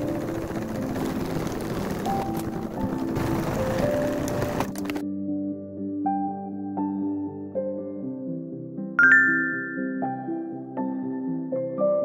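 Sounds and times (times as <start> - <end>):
sewing machine stitching canvas: 0.0 - 5.0.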